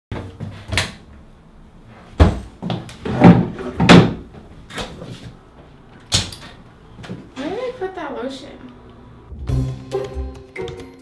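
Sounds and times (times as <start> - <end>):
wooden cabinet doors clacking: 3.1 - 4.3.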